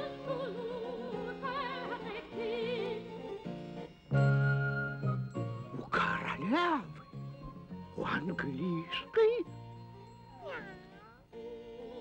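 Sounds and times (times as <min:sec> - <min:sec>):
background music: 0:00.0 - 0:12.0
cat meowing: 0:10.3 - 0:11.2.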